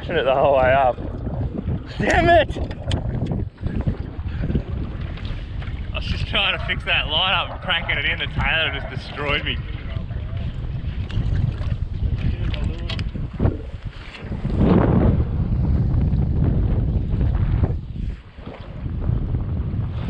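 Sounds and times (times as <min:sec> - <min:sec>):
choppy water around boat: 0:00.0 - 0:20.0
wind buffeting microphone: 0:00.0 - 0:20.0.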